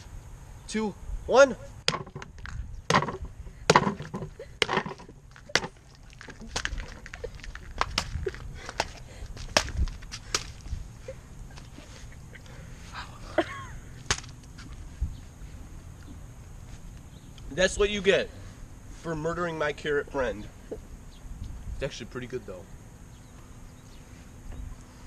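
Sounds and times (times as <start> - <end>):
sword smacking watermelon: 2.9 - 5.8.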